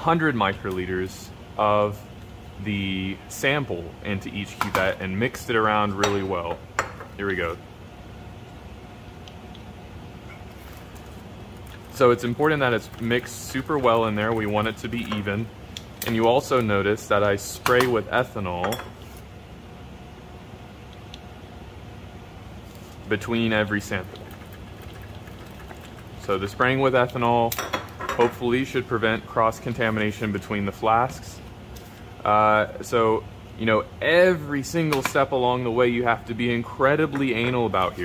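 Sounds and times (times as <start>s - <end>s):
low background hum: 0.0s - 38.0s.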